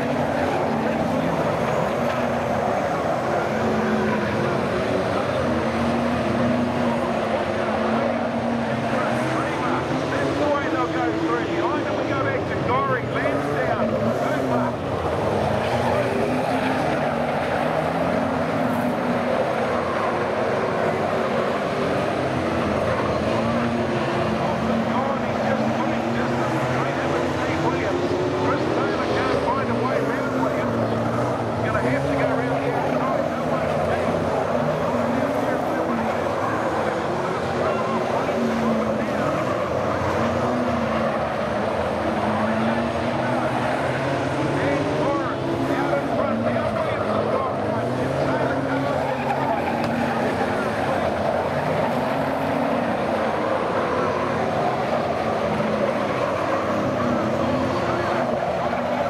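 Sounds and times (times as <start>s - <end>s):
racing car engines revving: 0.0s - 59.0s.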